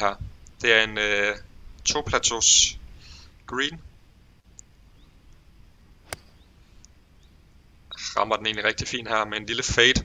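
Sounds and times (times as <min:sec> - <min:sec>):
faint background hiss: 0:00.0 - 0:10.0
golf ball struck click: 0:06.0 - 0:06.4.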